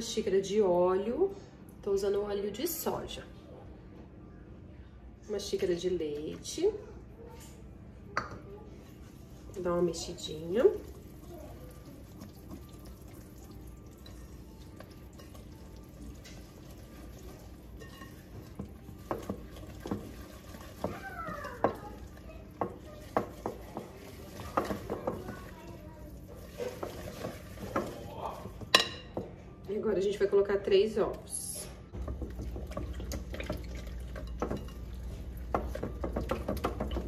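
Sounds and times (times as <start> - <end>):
whisk stirring thick batter: 10.8 - 28.7
whisk clinking against glass bowl: 17.8 - 25.5.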